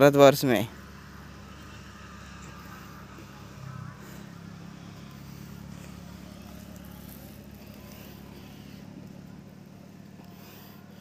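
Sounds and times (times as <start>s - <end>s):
low hum of engine running: 0.0s - 11.0s.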